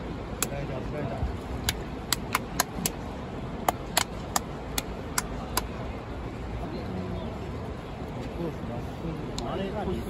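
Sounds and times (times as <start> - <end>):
low rumble of stadium crowd: 0.0 - 10.0
sharp hand claps: 1.6 - 3.0, 3.6 - 5.7.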